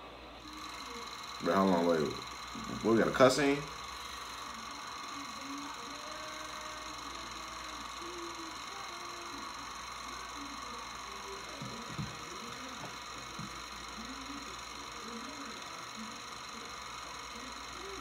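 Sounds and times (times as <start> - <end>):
faint muffled voices: 0.0 - 18.0
thin high whine: 0.0 - 18.0.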